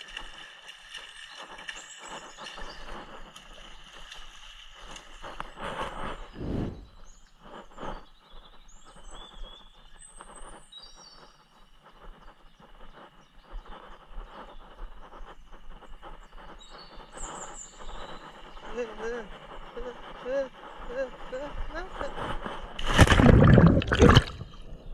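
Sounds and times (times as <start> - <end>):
outdoor background noise: 0.0 - 24.9
birds chirping: 6.2 - 24.9.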